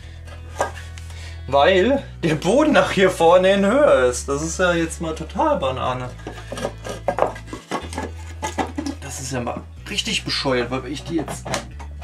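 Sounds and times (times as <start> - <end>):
wooden board knocking and scraping: 0.5 - 1.0, 6.0 - 9.7, 10.6 - 12.0.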